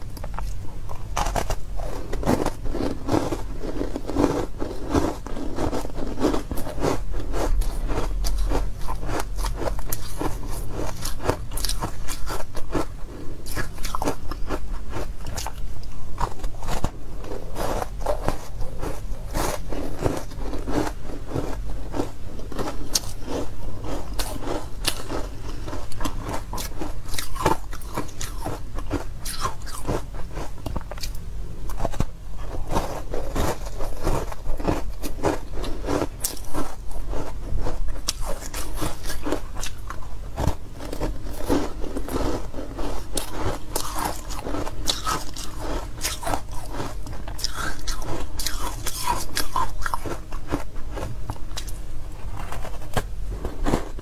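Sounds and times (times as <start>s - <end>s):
ice being chewed: 0.2s - 54.0s.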